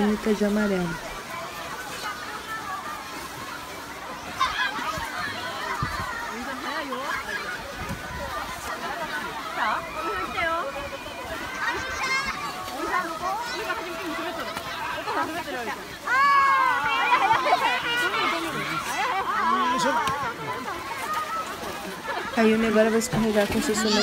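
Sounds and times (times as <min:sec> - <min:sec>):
crowd babble: 0:00.0 - 0:24.0
children shouting and squealing: 0:01.0 - 0:22.4, 0:23.6 - 0:24.0.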